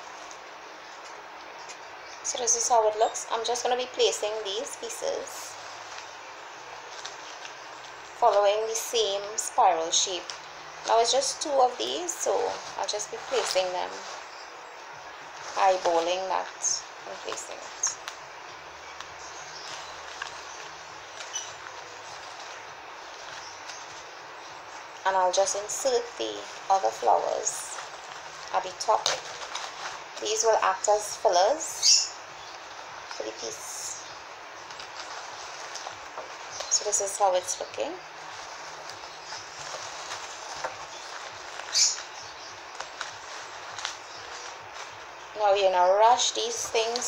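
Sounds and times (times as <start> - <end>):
flower stems ticking and rustling: 0.0 - 47.0
steady background hiss: 0.0 - 47.0.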